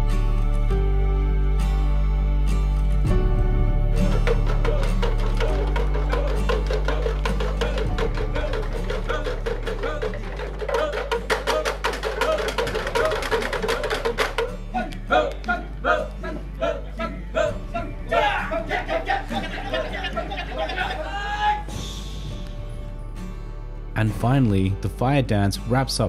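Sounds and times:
men chanting interlocking syllables: 4.5s - 21.8s.

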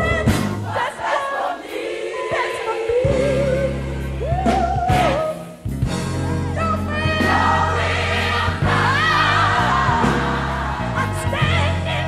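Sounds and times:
bass: 0.0s - 0.9s, 2.9s - 12.0s
gospel choir singing: 0.0s - 5.7s, 6.6s - 12.0s.

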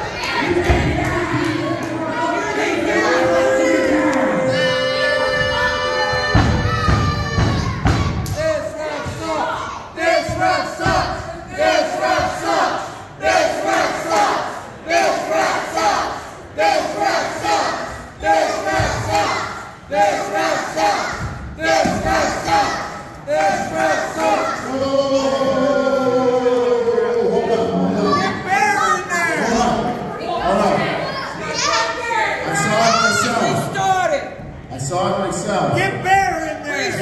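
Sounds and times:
crowd shouting in unison: 0.0s - 34.2s.

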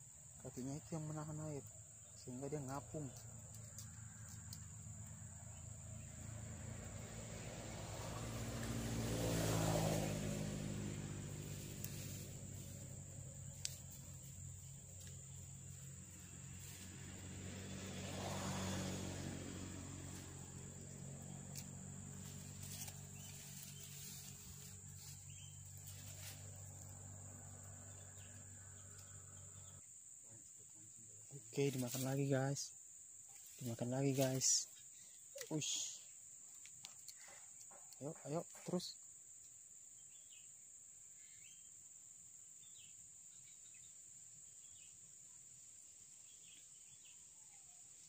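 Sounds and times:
motor vehicles passing: 0.8s - 29.8s.

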